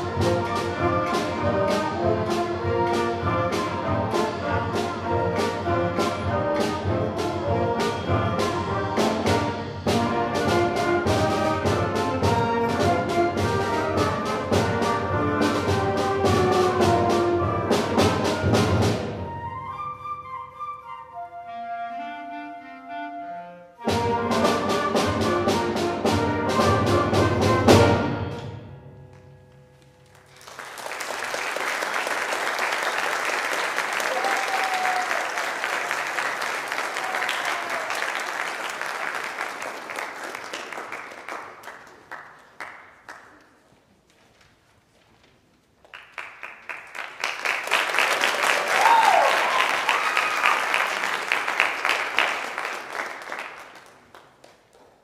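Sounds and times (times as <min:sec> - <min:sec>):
concert band playing: 0:00.0 - 0:20.3, 0:21.8 - 0:29.0
audience applauding: 0:30.0 - 0:43.6, 0:45.8 - 0:55.0.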